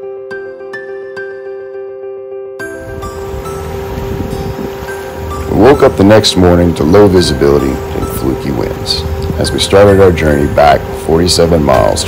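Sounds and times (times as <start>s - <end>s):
soft background music: 0.0s - 12.0s
wind buffeting microphone: 2.8s - 12.0s.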